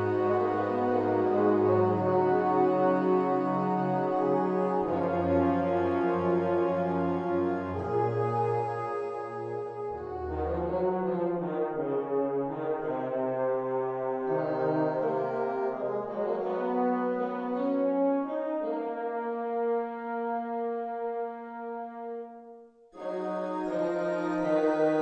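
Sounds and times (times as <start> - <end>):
sampled brass and woodwinds: 0.0 - 25.0.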